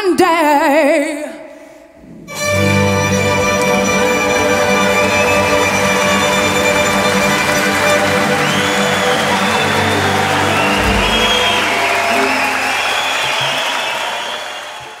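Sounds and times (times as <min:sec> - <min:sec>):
audience clapping and cheering: 0:03.9 - 0:15.0
high whoops: 0:08.8 - 0:14.9
orchestra closing chord: 0:09.4 - 0:12.7.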